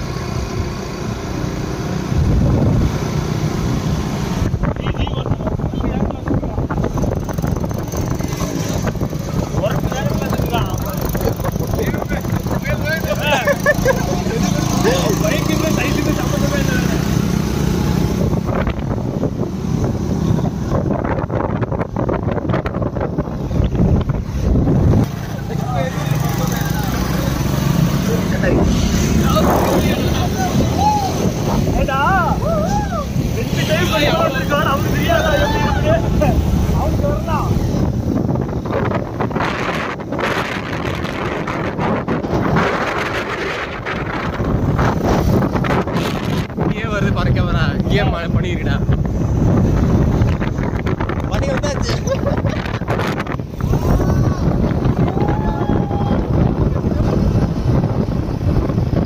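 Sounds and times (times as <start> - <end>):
motorcycle engine drone: 0.0 - 59.0
wind rushing over microphone: 0.0 - 59.0
voices calling out: 9.2 - 17.4, 25.2 - 39.5.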